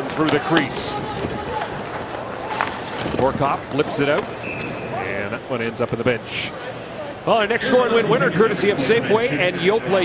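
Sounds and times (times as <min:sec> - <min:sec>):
ice skating: 0:00.0 - 0:05.1
crowd noise: 0:00.0 - 0:10.0.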